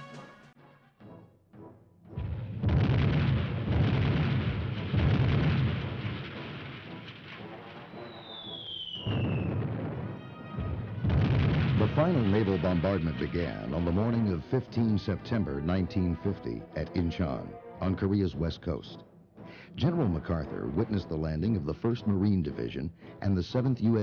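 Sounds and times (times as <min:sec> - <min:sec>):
explosions and gunfire rumble: 0:02.2 - 0:14.0
falling whistle: 0:07.9 - 0:09.6.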